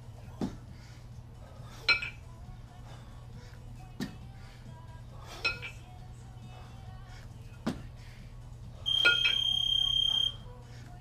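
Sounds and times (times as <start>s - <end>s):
kettlebells clinking together: 1.8s - 2.2s, 8.9s - 9.5s
electronic beep: 8.9s - 10.4s.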